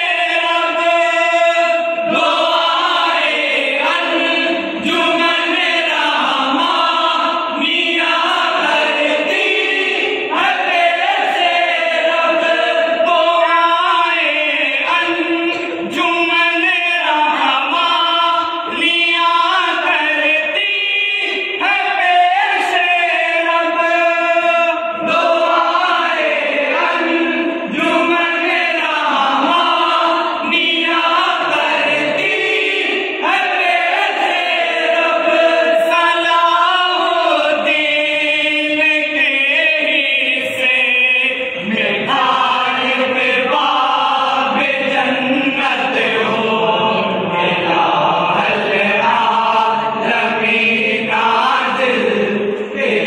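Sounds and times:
men singing unaccompanied: 0.0 - 53.0.

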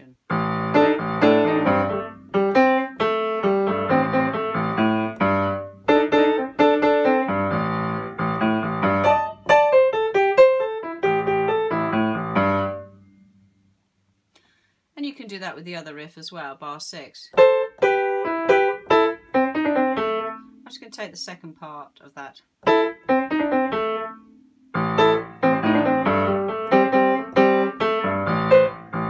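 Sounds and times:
solo jazz piano: 0.3 - 13.2, 17.4 - 20.6, 22.6 - 29.0.

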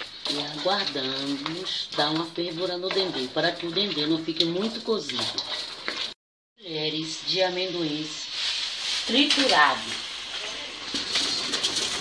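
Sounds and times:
spatula scraping pot: 0.0 - 6.2
hot pot hissing: 7.3 - 12.0.

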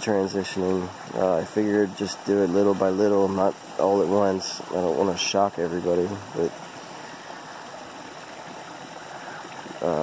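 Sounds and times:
stream running: 0.0 - 10.0.

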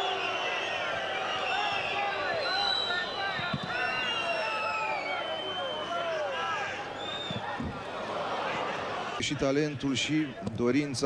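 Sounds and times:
crowd whistling: 0.0 - 10.4
crowd calling out: 0.0 - 10.5.

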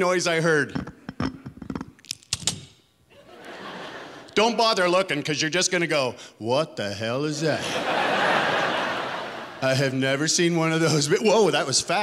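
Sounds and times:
audience laughing: 3.2 - 4.4, 7.5 - 10.0.

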